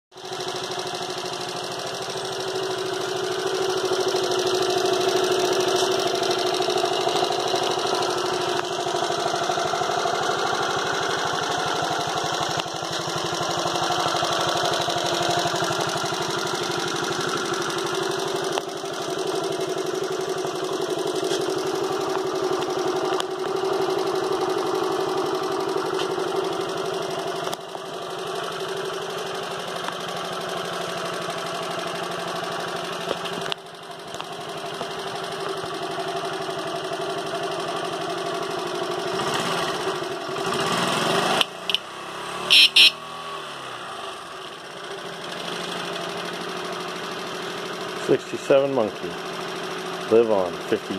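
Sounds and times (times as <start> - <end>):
small motorbike engine idling: 0.1 - 50.9.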